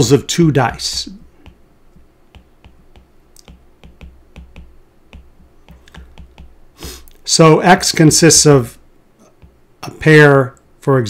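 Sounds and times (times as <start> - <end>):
stylus tapping on glass screen: 0.9 - 6.6, 9.4 - 9.6.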